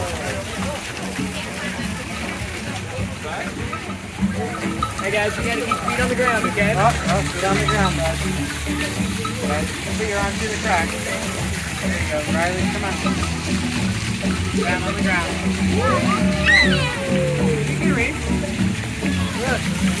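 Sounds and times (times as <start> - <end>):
crowd and children chattering: 0.0 - 20.0
fountain water splashing on rock: 0.0 - 20.0
low background music: 0.0 - 20.0.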